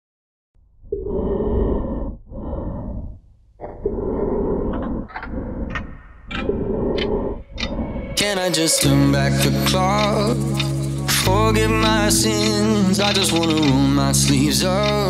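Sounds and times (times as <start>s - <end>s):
heavy breathing through gas mask: 1.0s - 8.2s
sharp clicks: 12.1s - 15.0s.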